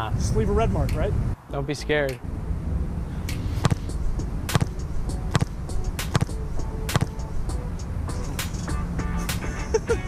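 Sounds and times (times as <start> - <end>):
wind rumble on microphone: 0.0 - 8.4
ball being kicked: 3.3 - 3.9, 4.5 - 7.2.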